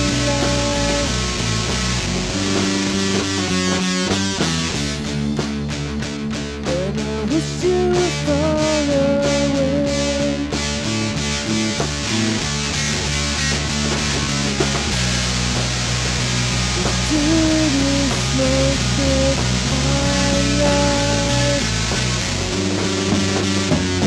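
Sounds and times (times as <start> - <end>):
bass guitar: 0.0 - 24.0
drums beating: 0.0 - 24.0
electric guitar: 0.0 - 24.0.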